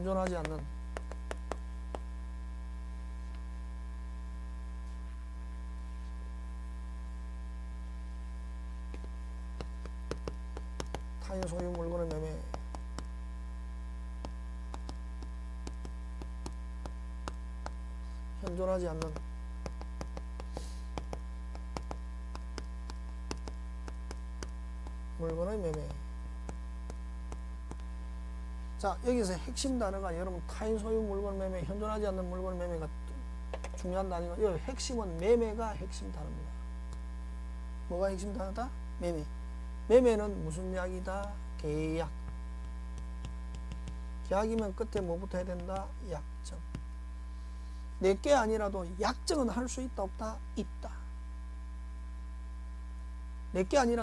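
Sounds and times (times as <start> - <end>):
electrical mains hum: 0.0 - 54.0
chalk tapping on chalkboard: 0.1 - 2.1, 8.9 - 13.2, 14.2 - 27.9, 42.6 - 46.0.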